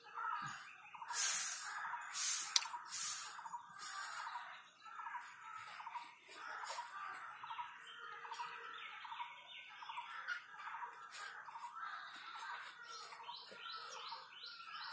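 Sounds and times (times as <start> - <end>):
birds chirping and chattering: 0.0 - 14.9
hissy rustle: 1.1 - 4.3.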